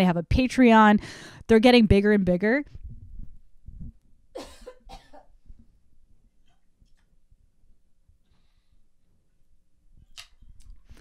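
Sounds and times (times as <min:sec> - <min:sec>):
woman coughing: 0:04.4 - 0:05.3.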